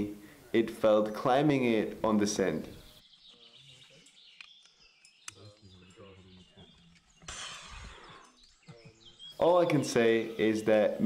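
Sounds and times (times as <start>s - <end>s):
faint voices: 5.3s - 11.0s
short breathy hiss: 7.3s - 8.2s.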